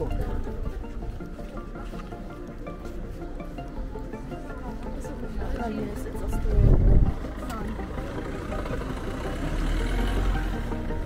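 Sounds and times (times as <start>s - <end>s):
passers-by talking: 0.0s - 11.0s
low rumble on microphone: 6.3s - 8.2s
car driving past: 7.3s - 11.0s.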